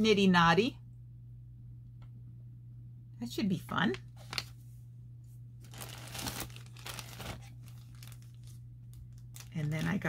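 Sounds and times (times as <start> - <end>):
packaging crinkling and rustling: 3.9 - 4.6, 5.6 - 10.0.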